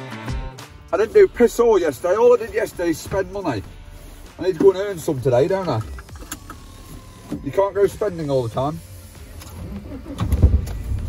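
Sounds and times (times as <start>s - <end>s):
van engine rumble: 9.2s - 11.0s.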